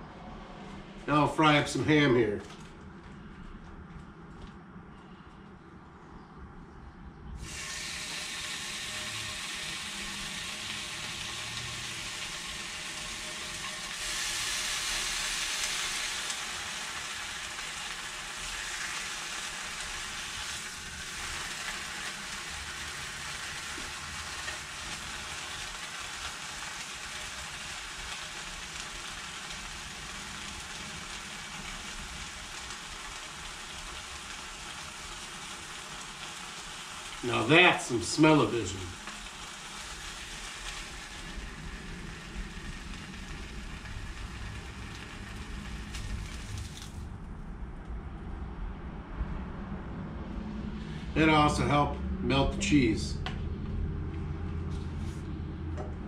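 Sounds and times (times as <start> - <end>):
ham sizzling in frying pan: 7.4 - 47.1.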